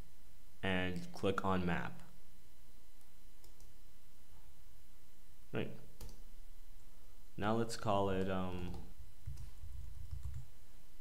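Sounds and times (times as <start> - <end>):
computer mouse clicking: 3.0 - 3.8, 6.0 - 6.2, 8.2 - 10.5.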